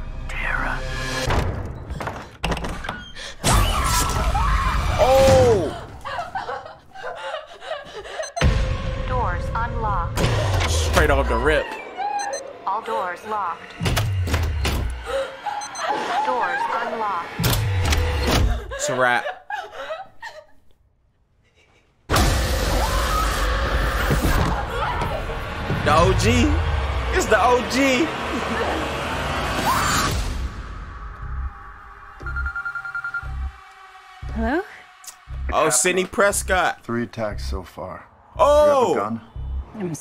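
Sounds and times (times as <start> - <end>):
telephone trilling ring: 32.2 - 33.5
low bass thuds: 38.3 - 39.8.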